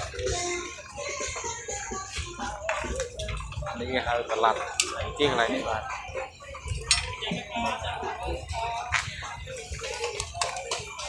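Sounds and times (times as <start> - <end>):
hubbub of overlapping voices: 0.0 - 11.0.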